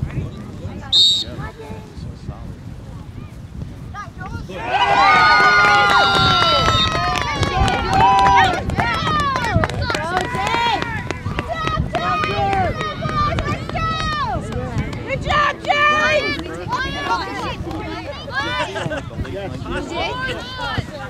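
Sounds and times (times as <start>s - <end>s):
people shouting and calling out: 4.1s - 21.0s.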